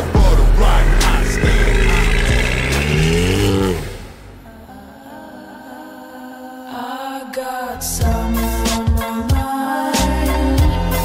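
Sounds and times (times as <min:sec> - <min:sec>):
car engine revving: 0:00.0 - 0:05.0.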